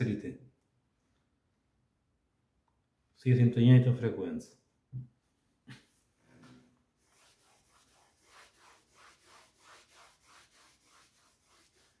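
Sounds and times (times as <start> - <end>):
eraser rubbing on a blackboard: 7.0 - 12.0.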